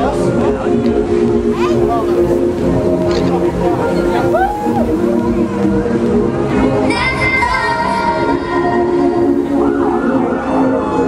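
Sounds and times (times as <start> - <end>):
loud music: 0.0 - 11.0
wavering siren-like wail: 9.4 - 11.0.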